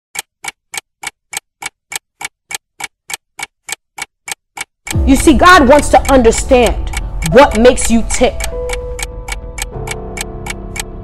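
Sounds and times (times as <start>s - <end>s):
clock ticking: 0.1s - 11.0s.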